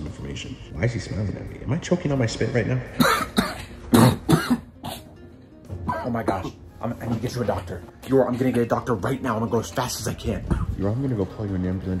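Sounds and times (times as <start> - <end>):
man coughing hard: 3.0 - 5.2, 5.8 - 6.6.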